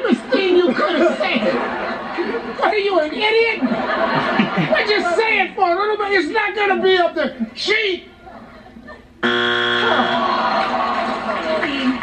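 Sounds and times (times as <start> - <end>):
harsh buzzer: 9.2 - 10.4.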